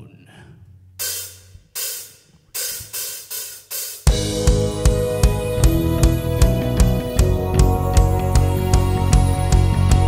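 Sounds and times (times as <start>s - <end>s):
drummer hitting cymbals: 1.0s - 8.1s.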